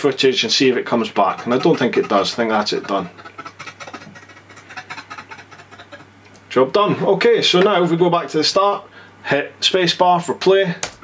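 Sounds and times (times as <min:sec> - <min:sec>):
choppy snatches of video audio: 0:00.0 - 0:06.6
steady low hum: 0:00.0 - 0:11.0.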